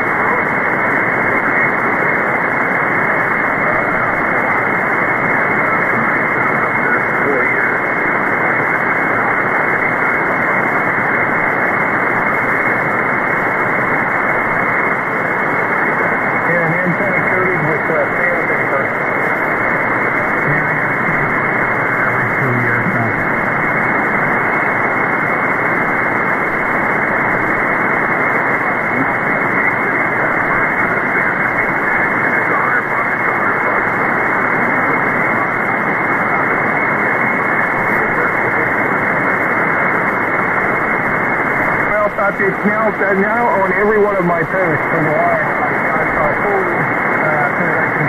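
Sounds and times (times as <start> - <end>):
faint voice in radio noise: 0.0 - 48.0
radio static hiss: 0.0 - 48.0.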